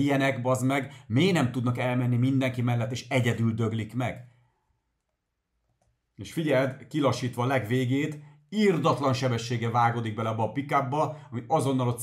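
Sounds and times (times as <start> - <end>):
man speaking: 0.0 - 4.2, 6.2 - 12.0.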